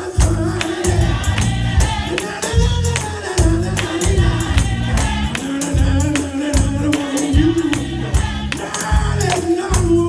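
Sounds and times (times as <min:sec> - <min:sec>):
gospel choir singing: 0:00.0 - 0:10.0
rhythmic hand claps: 0:00.0 - 0:10.0
low bass accompaniment: 0:00.2 - 0:10.0.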